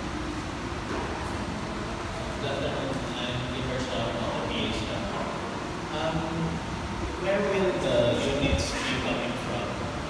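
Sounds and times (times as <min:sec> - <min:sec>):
low hum with hiss: 0:00.0 - 0:10.0.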